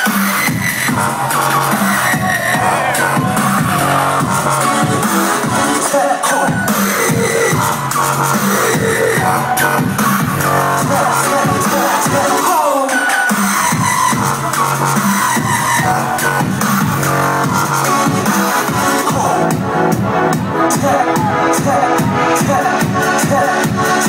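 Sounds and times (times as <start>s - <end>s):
dubstep through club sound system: 0.0s - 24.0s.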